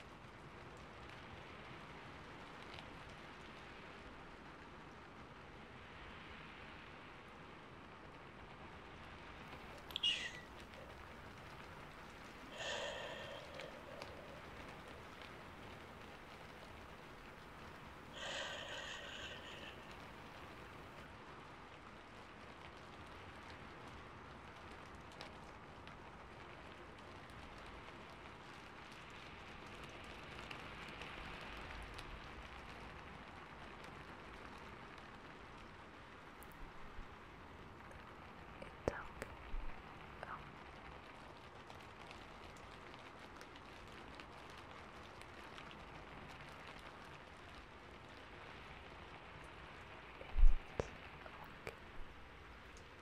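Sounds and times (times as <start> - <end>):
faint steady hiss: 0.0 - 53.0
soft whisper: 9.5 - 21.1, 37.8 - 41.8, 49.4 - 53.0.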